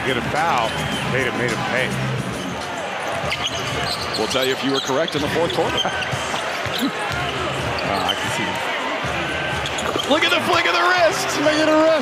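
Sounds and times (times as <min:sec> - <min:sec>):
arena crowd noise: 0:00.0 - 0:12.0.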